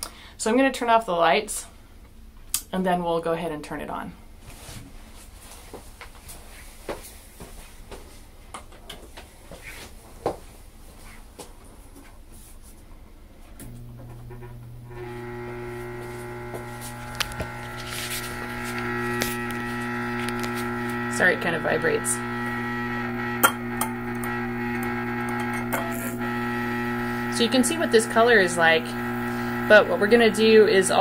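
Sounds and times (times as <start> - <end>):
power supply electrical hum: 13.4 - 31.0.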